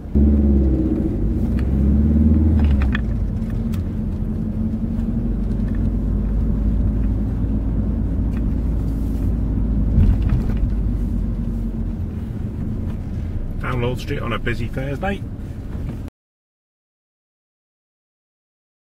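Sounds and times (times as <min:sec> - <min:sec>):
car engine rumble: 0:00.0 - 0:16.1.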